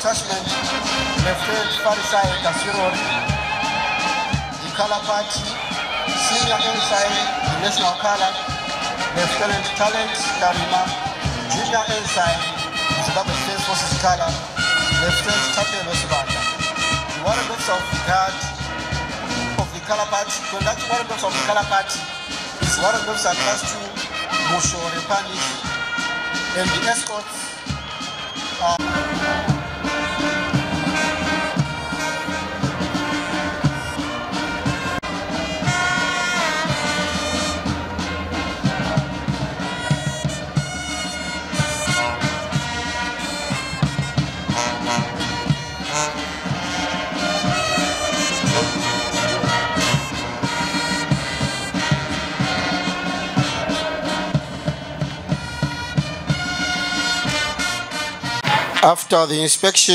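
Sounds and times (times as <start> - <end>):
brass band music: 0.0 - 59.9.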